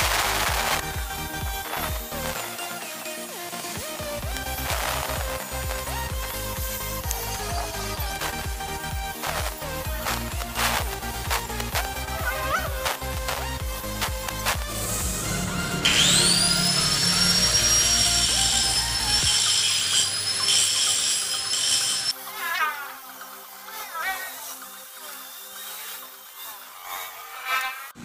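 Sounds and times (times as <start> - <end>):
angle grinder whine: 0.0 - 28.0
background music: 0.0 - 28.0.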